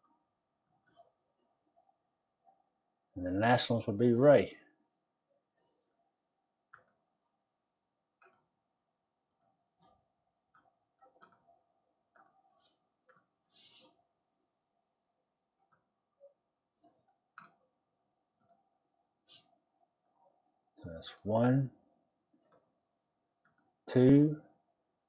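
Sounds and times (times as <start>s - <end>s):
computer mouse clicks: 0.8s - 1.1s, 6.7s - 7.0s, 8.2s - 8.5s, 9.3s - 11.5s, 12.1s - 14.0s, 15.6s - 15.9s, 16.8s - 17.6s, 18.4s - 18.6s, 23.4s - 23.8s.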